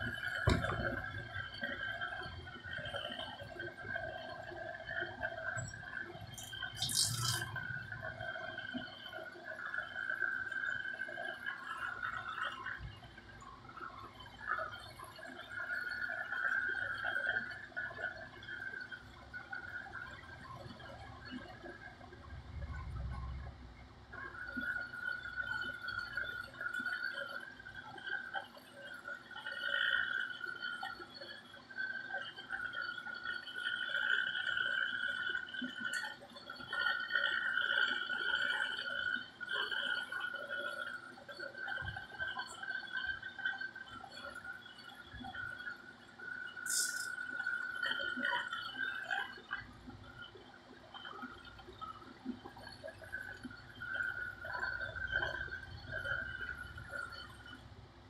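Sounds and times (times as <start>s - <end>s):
brief hiss: 46.7s - 47.1s.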